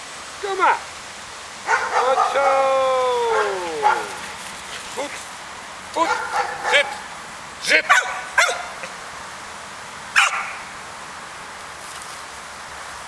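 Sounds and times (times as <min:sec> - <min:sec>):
dog barking: 0:01.6 - 0:02.6, 0:03.2 - 0:04.4, 0:06.0 - 0:07.1, 0:07.7 - 0:08.9, 0:10.2 - 0:10.6.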